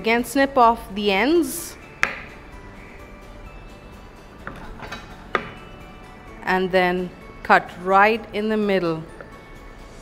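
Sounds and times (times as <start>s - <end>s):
soft background music: 0.0s - 10.0s
knife knocking on cutting board: 2.0s - 2.4s, 4.4s - 5.6s.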